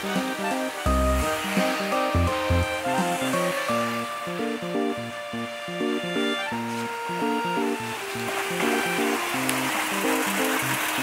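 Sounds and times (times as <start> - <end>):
melody of short notes: 0.0 - 9.9
steady hiss: 0.0 - 11.0.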